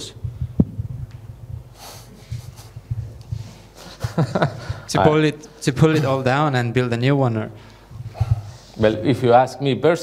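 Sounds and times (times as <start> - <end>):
man breathing out through nose: 1.7 - 2.5.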